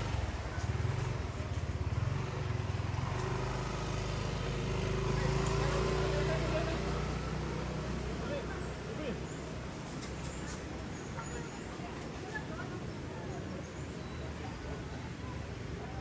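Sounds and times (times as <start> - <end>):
vehicle engine running: 0.0 - 13.4.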